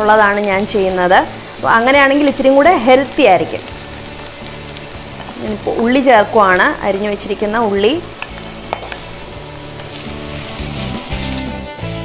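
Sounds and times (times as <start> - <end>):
shallots sizzling in oil: 0.0 - 11.7
spatula stirring in pan: 8.0 - 11.4.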